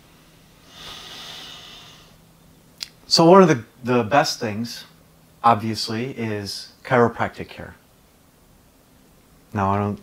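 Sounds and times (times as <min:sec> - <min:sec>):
person breathing through nose: 0:00.6 - 0:02.2.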